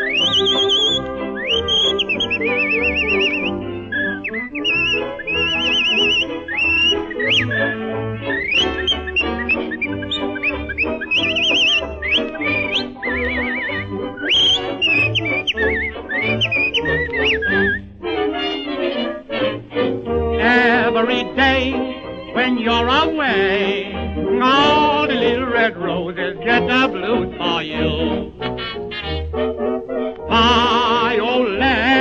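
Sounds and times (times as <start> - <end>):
man whistling a melody: 0.0 - 17.9.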